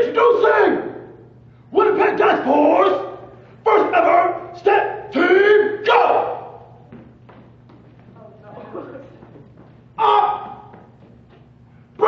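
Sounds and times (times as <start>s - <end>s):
loud shouted calls: 0.0s - 6.8s, 9.9s - 10.9s.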